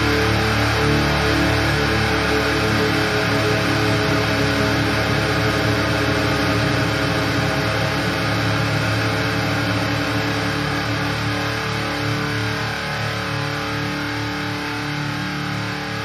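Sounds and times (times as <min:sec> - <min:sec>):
distorted electric guitar chord: 0:00.0 - 0:16.0.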